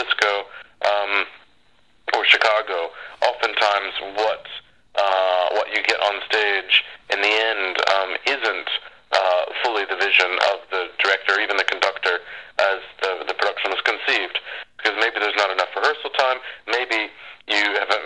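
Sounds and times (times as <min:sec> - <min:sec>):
person talking over phone line: 0:00.0 - 0:18.0.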